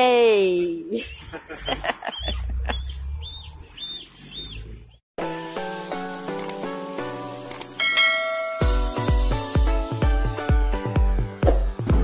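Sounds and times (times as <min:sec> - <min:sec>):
melodic music outro: 0:05.2 - 0:12.0.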